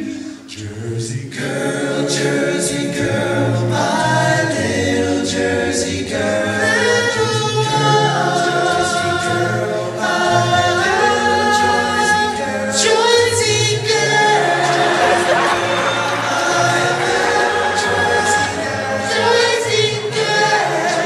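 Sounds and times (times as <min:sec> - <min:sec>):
male a cappella group singing: 0:00.0 - 0:21.0.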